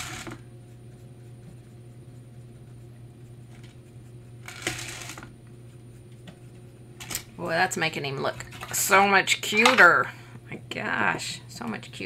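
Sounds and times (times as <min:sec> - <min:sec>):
steady low hum: 0:00.0 - 0:12.0
board scraping on woven mat: 0:04.4 - 0:05.3.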